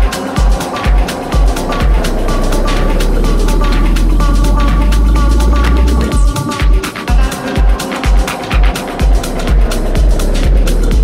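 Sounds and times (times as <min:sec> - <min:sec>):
kick drum beat: 0:00.0 - 0:11.0
ticking hi-hats: 0:00.0 - 0:11.0
falling synth sweep: 0:00.3 - 0:07.1
deep bass rumble: 0:00.6 - 0:06.8, 0:08.8 - 0:11.0.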